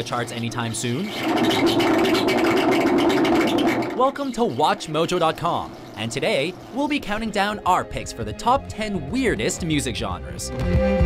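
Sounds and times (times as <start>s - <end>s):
crackling scraping noise music: 1.0s - 9.6s
steady low drone: 4.6s - 11.0s.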